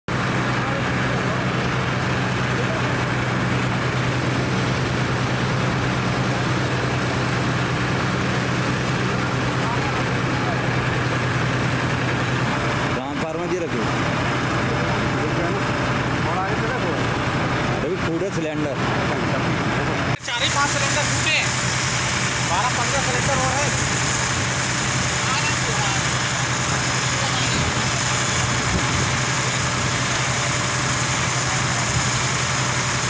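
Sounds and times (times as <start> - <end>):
large fire burning: 0.1 - 33.0
vehicle engine idling: 0.1 - 33.0.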